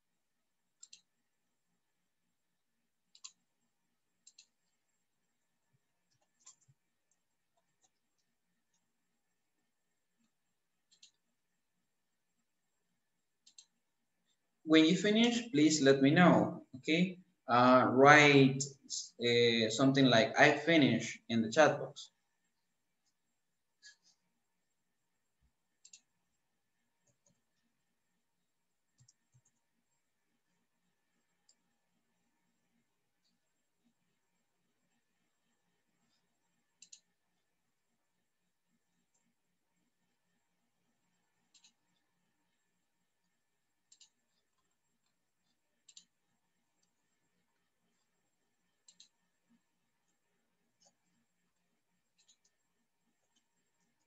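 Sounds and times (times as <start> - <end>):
computer mouse clicks: 0.7 - 1.2, 3.1 - 3.5, 4.2 - 4.9, 6.0 - 8.9, 10.2 - 11.3, 13.4 - 13.8, 25.7 - 26.2, 27.0 - 27.7, 28.8 - 30.0, 30.8 - 31.8, 34.8 - 37.5, 41.0 - 54.0.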